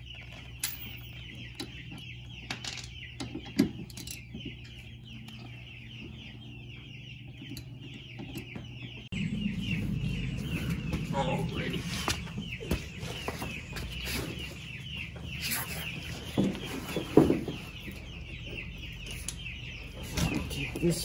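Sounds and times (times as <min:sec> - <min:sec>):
baby chicks peeping: 0:00.0 - 0:21.0
steady low hum: 0:00.0 - 0:21.0.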